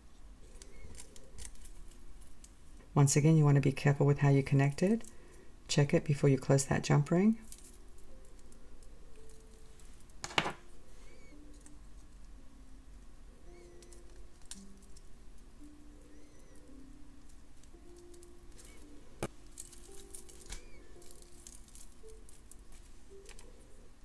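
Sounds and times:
soft background music: 0:00.0 - 0:24.0.

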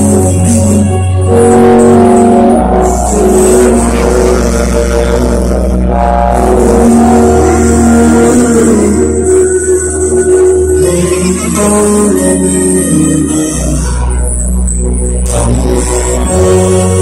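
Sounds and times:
loud live concert music: 0:00.0 - 0:17.0.

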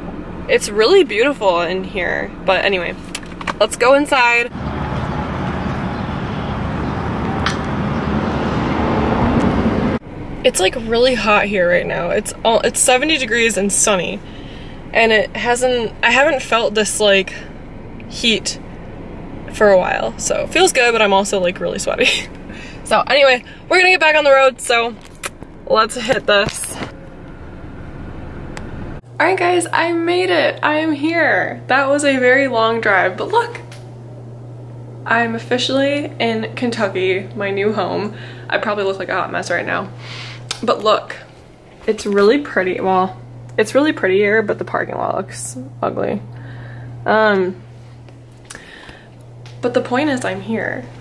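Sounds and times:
highway traffic rushing: 0:00.0 - 0:29.1
car road and engine noise: 0:00.0 - 0:29.2.

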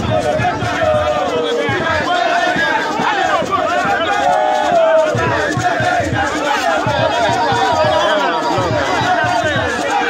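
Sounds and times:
chatter: 0:00.0 - 0:10.0
crowd singing and chanting: 0:00.0 - 0:10.0
quick steady drum beat: 0:00.0 - 0:10.0.

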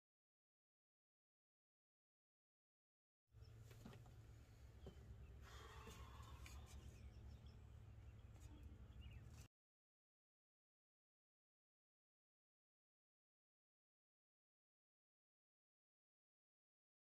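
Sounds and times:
faint bird chirps: 0:04.4 - 0:09.5.

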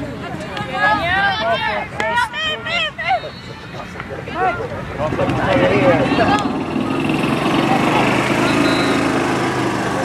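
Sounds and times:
voices calling: 0:00.0 - 0:10.0
small engine running: 0:05.0 - 0:10.0.

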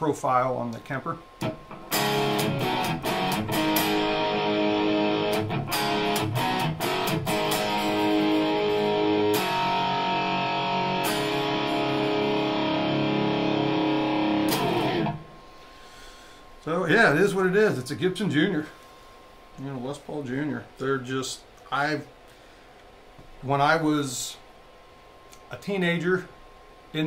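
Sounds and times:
electric guitar chords: 0:01.4 - 0:15.5.

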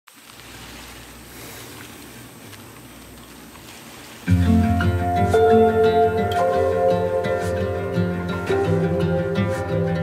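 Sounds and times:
faint steady hiss: 0:00.1 - 0:10.0
low hum: 0:00.4 - 0:10.0.

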